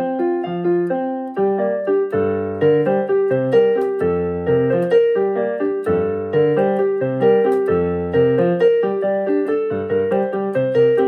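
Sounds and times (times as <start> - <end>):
electronic keyboard piano: 0.0 - 11.0.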